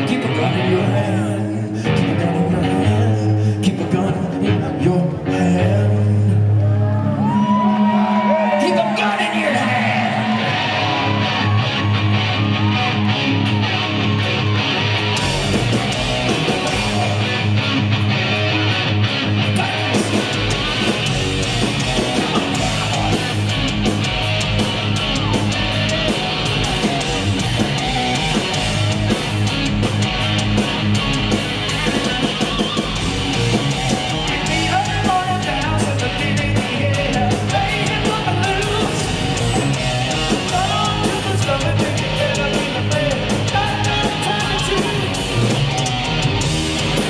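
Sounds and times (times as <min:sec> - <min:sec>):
bass guitar: 0:00.0 - 0:47.0
distorted electric guitar riffing: 0:00.0 - 0:47.0
drums and cymbals: 0:15.0 - 0:18.5, 0:19.5 - 0:47.0.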